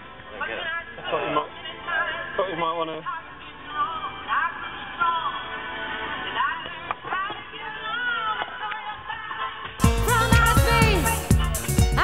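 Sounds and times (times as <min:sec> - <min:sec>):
muffled music with high singing: 0:00.0 - 0:12.0.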